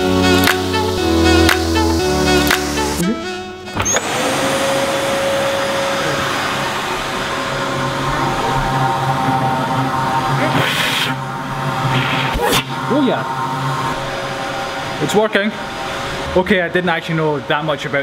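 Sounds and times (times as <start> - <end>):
background music: 0.0 - 4.0
vacuum cleaner motor running: 0.0 - 16.5.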